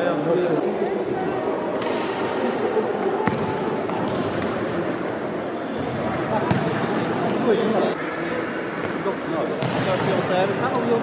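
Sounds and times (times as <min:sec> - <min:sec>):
people's voices in a hall: 0:00.0 - 0:11.0.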